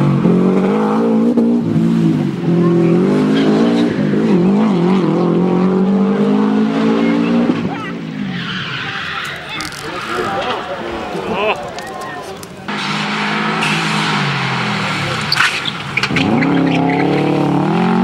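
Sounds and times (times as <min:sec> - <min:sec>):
rally car engine accelerating: 0:00.0 - 0:08.8, 0:12.7 - 0:18.0.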